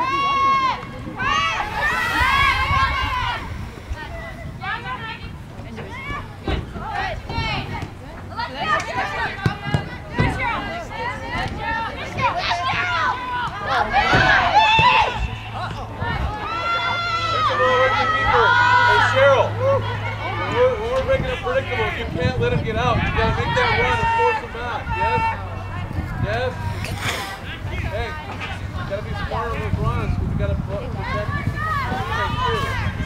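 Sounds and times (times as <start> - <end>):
people shouting: 0.0 - 5.3, 11.7 - 20.6.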